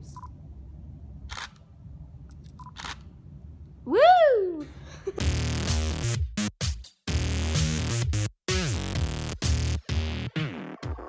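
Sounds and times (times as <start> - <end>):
whoop rising and falling in pitch: 3.9 - 4.6
electronic music with drum machine: 5.2 - 11.0.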